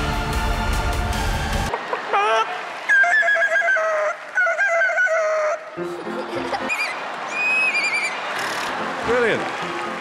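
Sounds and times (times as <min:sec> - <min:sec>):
studio audience noise: 0:06.2 - 0:10.0.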